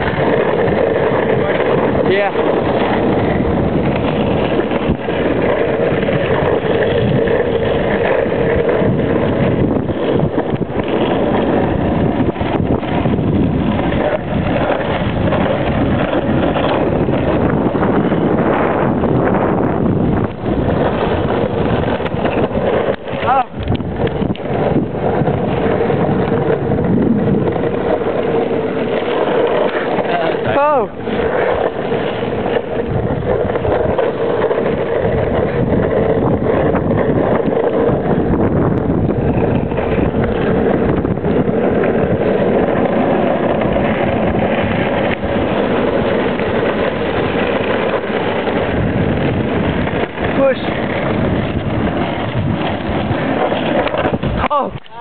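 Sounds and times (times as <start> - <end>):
skateboard wheels rolling on pavement: 0.0 - 55.0
wind on microphone: 0.0 - 55.0.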